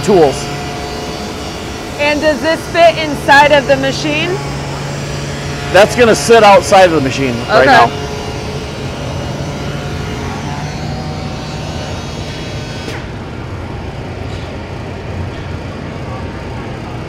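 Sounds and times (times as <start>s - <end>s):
dust extraction vacuum: 0.0s - 13.1s.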